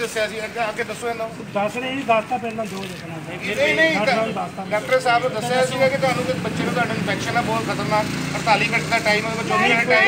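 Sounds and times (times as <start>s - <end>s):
crowd talking: 0.0s - 10.0s.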